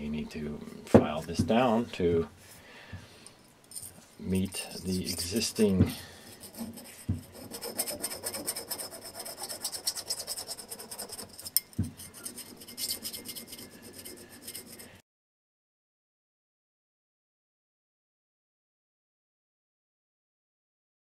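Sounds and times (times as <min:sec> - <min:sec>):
needle file rasping: 0:04.5 - 0:15.0.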